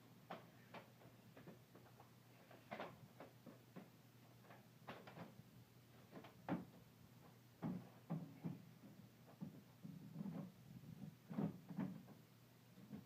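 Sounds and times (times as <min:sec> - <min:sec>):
metal ladder knocks and clicks: 0:00.3 - 0:05.4, 0:07.6 - 0:10.4.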